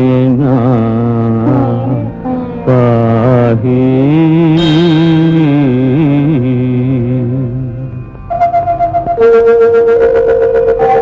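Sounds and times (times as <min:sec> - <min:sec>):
continuous low drone: 0:00.0 - 0:11.0
long held sung note: 0:04.5 - 0:07.1.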